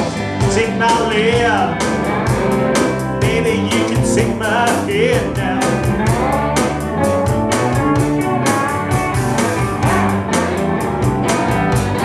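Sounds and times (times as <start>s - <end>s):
bass guitar: 0.0s - 12.0s
drum kit steady beat: 0.0s - 12.0s
electric guitars: 0.0s - 12.0s.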